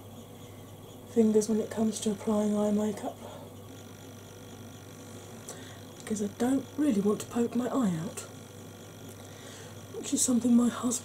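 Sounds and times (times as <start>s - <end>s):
low electrical hum: 0.0s - 11.0s
thin high whine: 0.0s - 11.0s.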